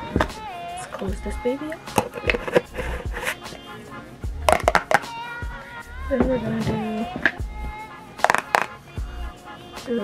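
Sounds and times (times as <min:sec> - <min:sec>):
background music: 0:00.0 - 0:10.0
plastic jars and lids clicking: 0:01.9 - 0:03.4, 0:04.5 - 0:05.1, 0:08.2 - 0:08.7.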